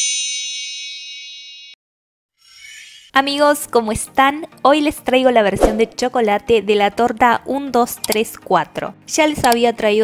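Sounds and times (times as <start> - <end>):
bright bell-like chime: 0.0 - 1.8.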